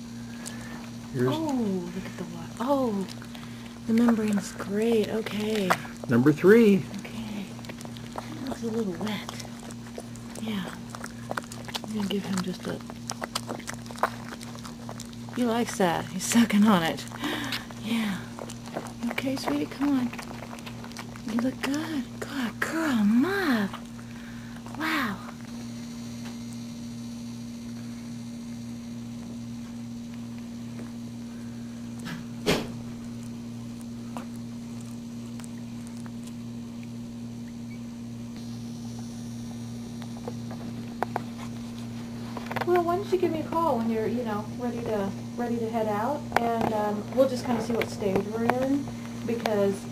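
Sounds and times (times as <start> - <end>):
steady low hum: 0.0 - 49.9
puppy sucking wet clicks: 0.3 - 22.2, 40.0 - 43.9.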